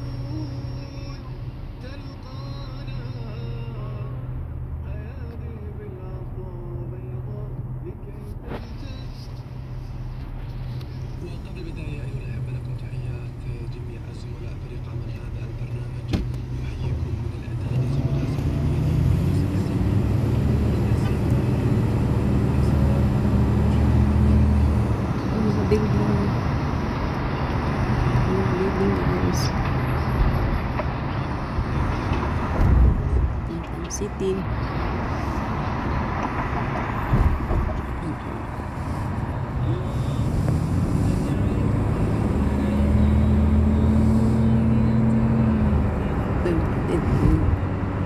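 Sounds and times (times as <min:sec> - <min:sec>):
car engine and road noise: 0:00.0 - 0:48.0.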